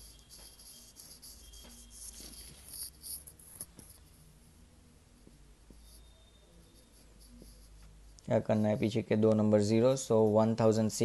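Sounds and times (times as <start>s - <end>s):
marker pen writing: 0.0s - 11.0s.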